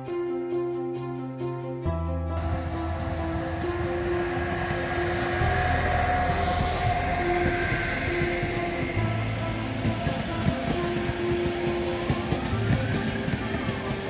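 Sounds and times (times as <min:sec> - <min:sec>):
passenger train rumbling past: 0:02.2 - 0:14.0
wheels clicking over rails: 0:04.3 - 0:14.0.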